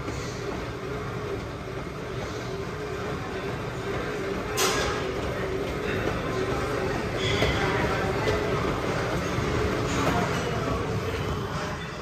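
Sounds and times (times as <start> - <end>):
cardio machine rumble: 0.0 - 12.0.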